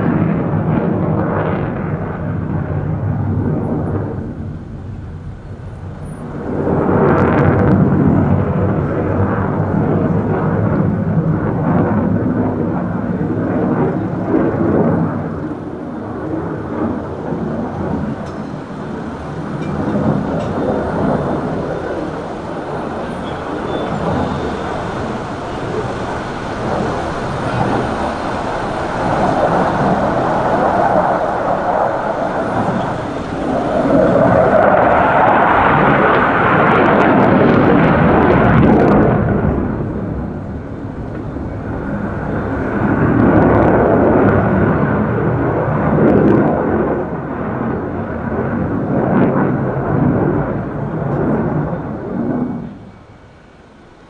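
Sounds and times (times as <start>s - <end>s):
jet roar: 0.0s - 54.0s.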